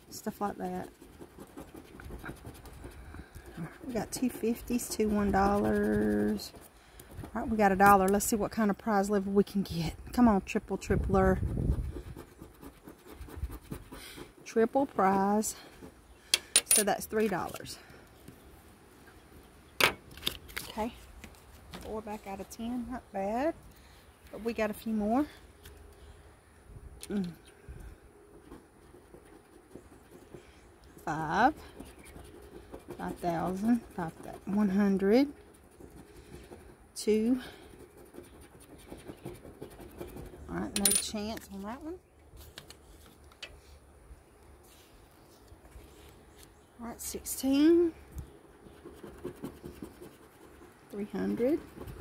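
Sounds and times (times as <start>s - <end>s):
coin scratching lottery ticket: 0.2s - 6.6s, 31.1s - 41.3s, 48.7s - 52.0s.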